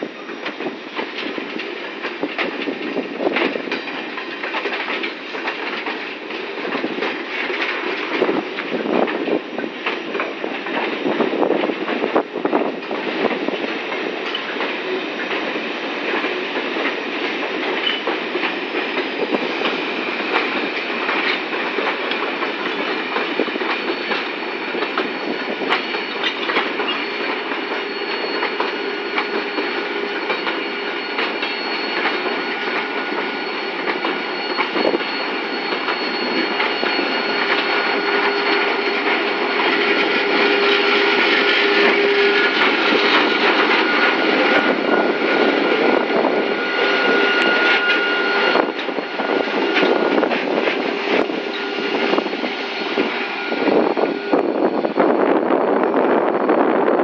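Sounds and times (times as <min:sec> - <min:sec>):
diesel locomotive: 0:00.0 - 0:57.0
wagon wheels clicking over rail joints: 0:00.4 - 0:15.4, 0:16.1 - 0:30.6
wheel squeals: 0:17.7 - 0:55.2.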